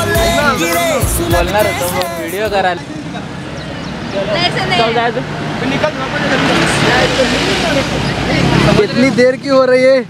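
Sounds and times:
people talking: 0:00.0 - 0:03.3, 0:04.1 - 0:10.0
vehicle passing on road: 0:00.3 - 0:10.0.

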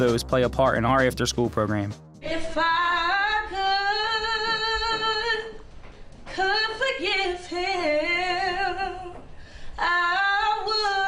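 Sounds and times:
girl singing: 0:02.2 - 0:05.6, 0:06.3 - 0:09.2, 0:09.8 - 0:11.0.

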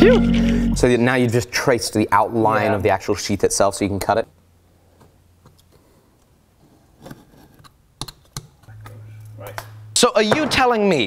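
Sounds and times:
steady low hum: 0:00.0 - 0:01.3, 0:08.7 - 0:10.3.

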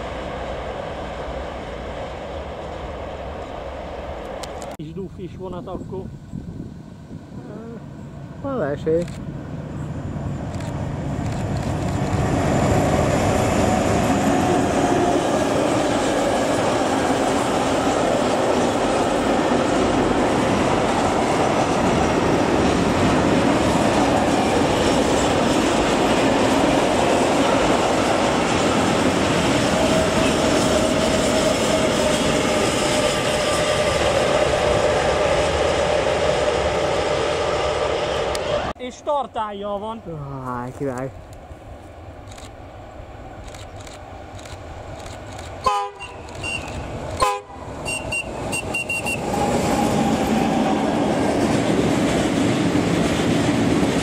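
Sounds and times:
freight train passing: 0:00.0 - 0:54.0
train wheels running on rails: 0:09.0 - 0:38.7, 0:43.3 - 0:54.0.

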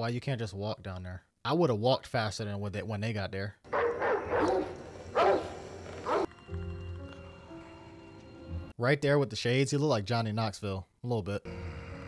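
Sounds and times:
dog barking: 0:03.7 - 0:06.3
soft sustained music notes: 0:05.8 - 0:08.7.

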